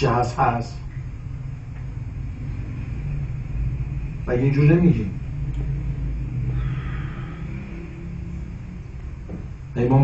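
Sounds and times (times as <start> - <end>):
low hum and rumble: 0.0 - 10.0.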